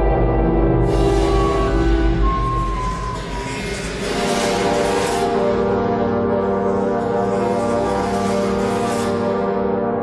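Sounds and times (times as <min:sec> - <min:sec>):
dark soundtrack music: 0:00.0 - 0:10.0.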